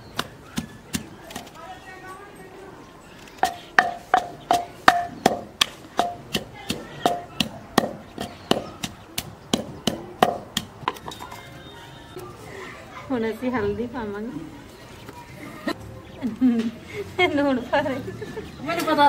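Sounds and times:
wooden pestle pounding in clay mortar: 0.2s - 1.5s, 3.4s - 11.3s.

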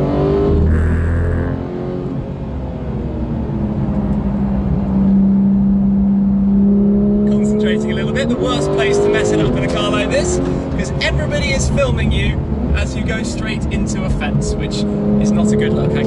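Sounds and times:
sports car engine from cabin: 0.0s - 16.0s.

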